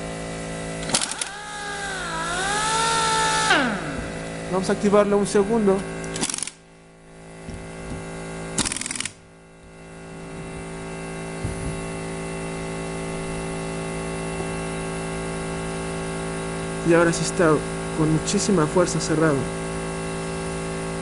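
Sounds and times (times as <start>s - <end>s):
steady hum with fixed tones: 0.0s - 21.0s
pneumatic capping tool: 0.8s - 4.4s, 6.0s - 6.6s, 7.5s - 9.2s.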